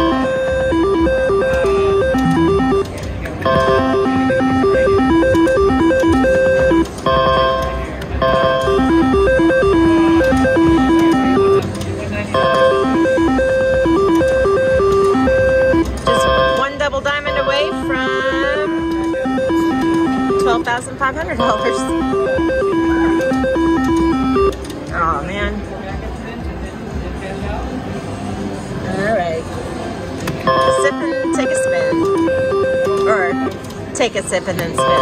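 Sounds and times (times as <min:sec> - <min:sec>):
slot machine beeping melody: 0:00.0 - 0:25.4, 0:30.4 - 0:35.0.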